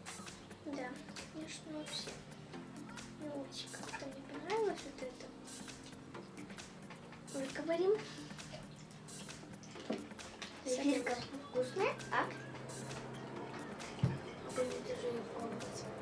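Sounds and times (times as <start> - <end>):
soft background music: 0.0 - 16.0
children chewing candy: 8.0 - 11.4.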